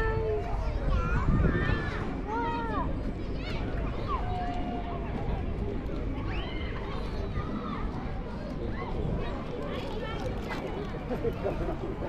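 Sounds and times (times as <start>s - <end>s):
adults and children talking: 0.0s - 12.0s.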